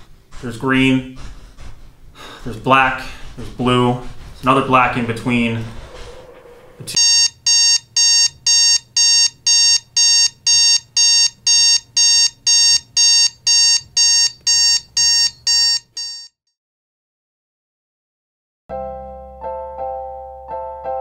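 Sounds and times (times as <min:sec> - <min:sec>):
alarm clock beeping: 0:07.0 - 0:16.4.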